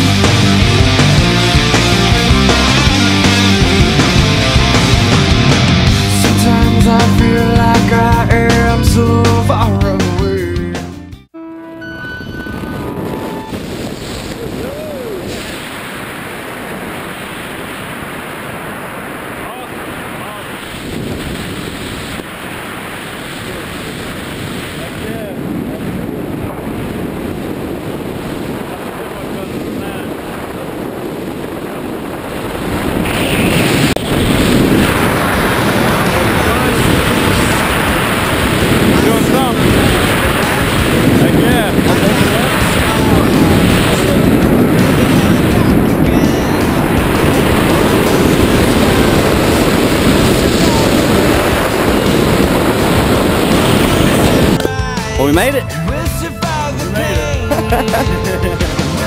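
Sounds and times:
wind on microphone: 11.6 - 59.0.

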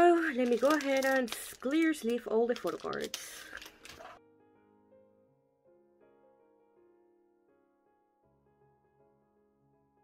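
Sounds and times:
plastic sleeves rustling and clicking: 0.0 - 4.2
soft piano music: 0.0 - 10.0.

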